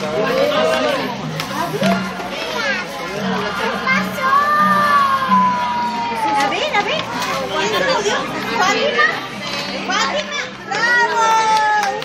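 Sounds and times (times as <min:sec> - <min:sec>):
adults and children talking: 0:00.0 - 0:12.0.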